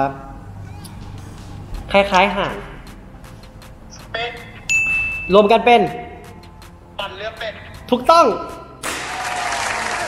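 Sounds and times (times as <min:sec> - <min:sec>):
applause: 0:08.8 - 0:10.0.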